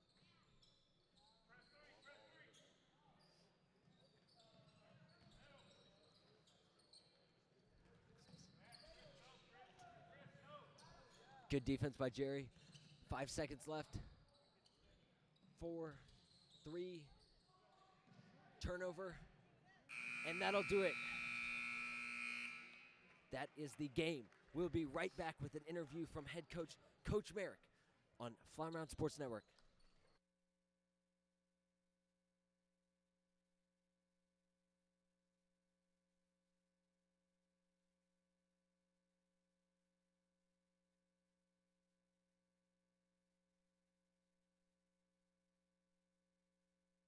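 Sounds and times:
scoreboard buzzer: 19.9 - 23.1
players calling out: 19.9 - 23.9.

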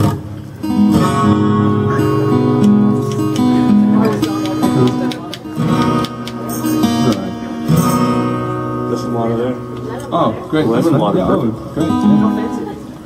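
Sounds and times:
acoustic guitars strummed: 0.0 - 13.0.

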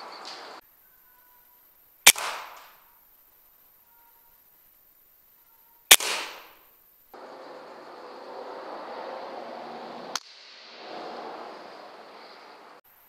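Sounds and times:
background hiss: 0.0 - 13.0
air rifle shot: 2.1 - 2.8, 5.9 - 6.6.

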